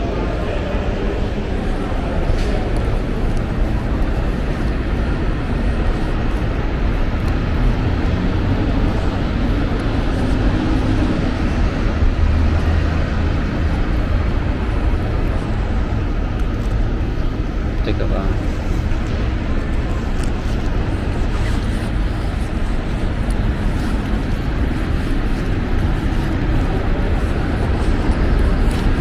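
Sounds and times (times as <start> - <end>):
jet aircraft rumble: 0.0 - 29.0
road traffic: 0.0 - 29.0.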